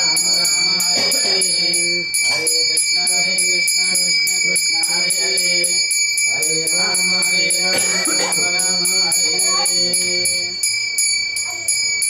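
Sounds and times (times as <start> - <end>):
handbell ringing quickly: 5.4 - 12.0.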